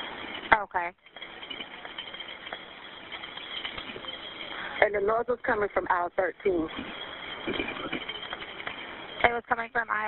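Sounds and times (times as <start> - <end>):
faint background noise: 0.0 - 10.0
telephone line hiss: 0.0 - 10.0.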